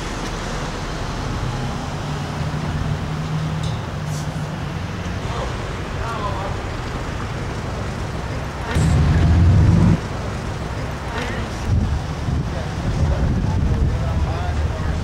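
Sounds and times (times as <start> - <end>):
traffic rumble: 0.0 - 15.0
faint voices: 4.1 - 15.0
loud low rumble: 8.7 - 10.3
wind on microphone: 8.8 - 10.0, 11.6 - 15.0.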